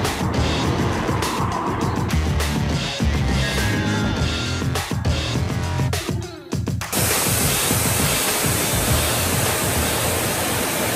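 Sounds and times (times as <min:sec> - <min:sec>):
low uneven throb: 0:00.0 - 0:04.7.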